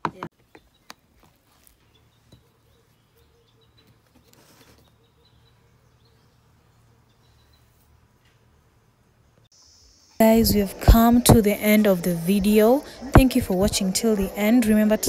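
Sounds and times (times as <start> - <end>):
bird chirps: 0.4 - 8.4.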